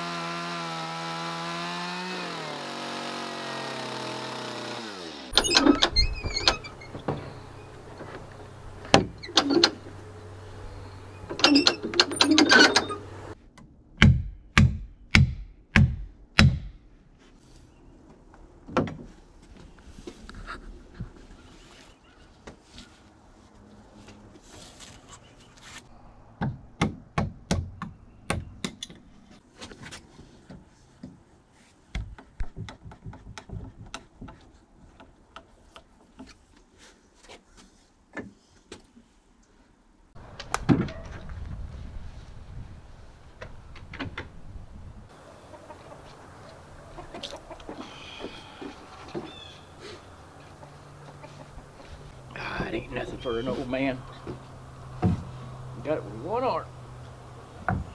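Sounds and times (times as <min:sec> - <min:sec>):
chainsaw idling: 0:00.0 - 0:05.4
lifting gear metallic clicks: 0:05.3 - 0:09.9, 0:11.2 - 0:13.1.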